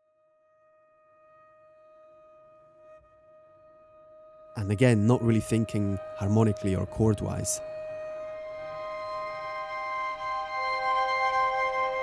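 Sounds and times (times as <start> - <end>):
quiet low texture: 4.6 - 10.5.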